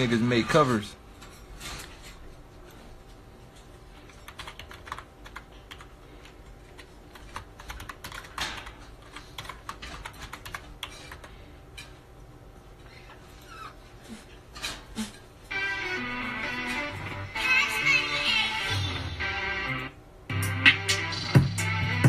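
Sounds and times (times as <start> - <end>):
keyboard typing clicks: 4.2 - 11.3.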